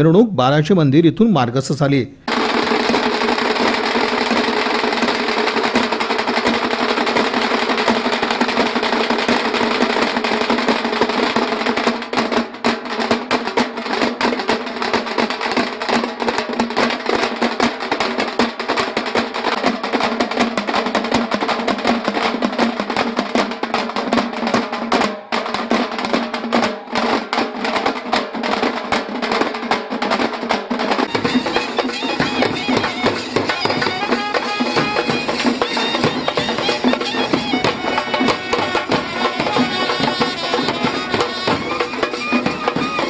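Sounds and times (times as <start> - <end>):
band of drums beaten fast: 2.3 - 43.0.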